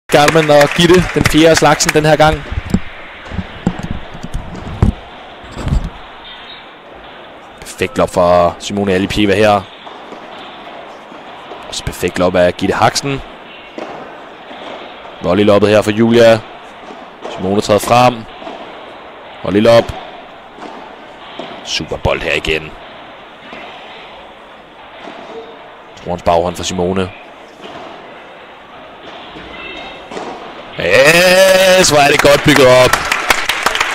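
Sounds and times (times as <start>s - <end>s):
indoor sports hall background noise: 0.1s - 33.9s
ball hits: 1.2s - 32.9s.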